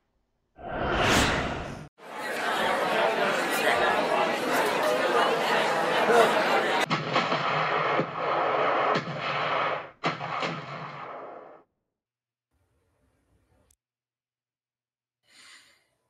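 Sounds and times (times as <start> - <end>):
many overlapping voices: 2.0 - 8.0
artillery fire: 6.8 - 11.6.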